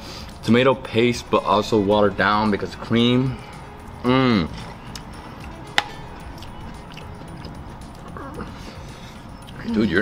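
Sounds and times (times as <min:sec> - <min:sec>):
faint music: 0:00.0 - 0:10.0
restaurant background noise: 0:02.7 - 0:10.0.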